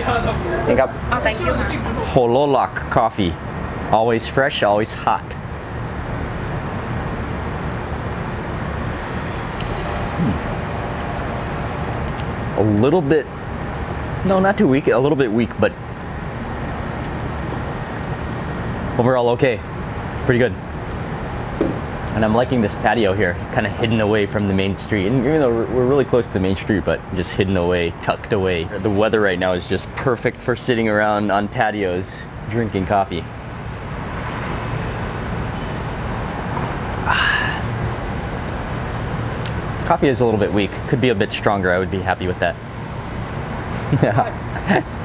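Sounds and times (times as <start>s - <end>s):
low outdoor rumble: 0.0s - 45.0s.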